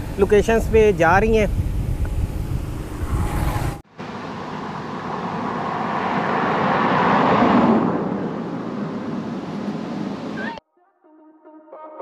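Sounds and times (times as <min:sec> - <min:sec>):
road vehicle passing on bridge: 0:01.6 - 0:10.6.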